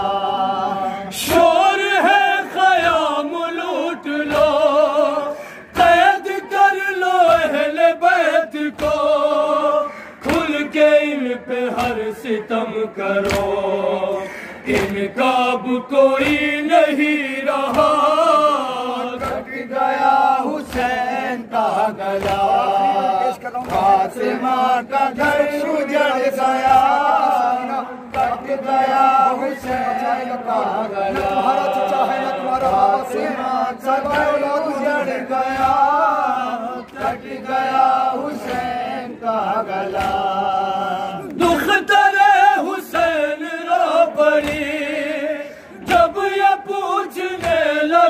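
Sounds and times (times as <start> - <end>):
men chanting a lament in unison: 0.0 - 48.0.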